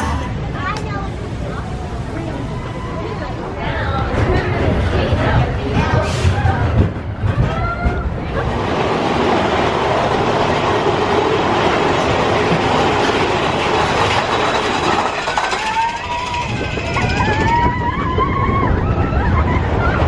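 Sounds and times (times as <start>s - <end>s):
roller coaster car rattling: 0.0s - 20.0s
riders screaming: 15.0s - 20.0s.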